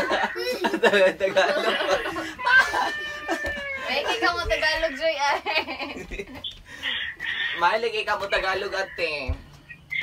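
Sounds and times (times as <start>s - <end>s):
person squealing: 1.6s - 4.1s.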